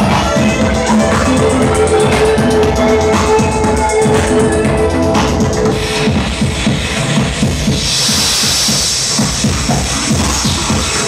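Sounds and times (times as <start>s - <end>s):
live electronic music: 0.0s - 11.0s
held electronic tone: 0.5s - 6.8s
bright high noise hiss: 5.7s - 11.0s.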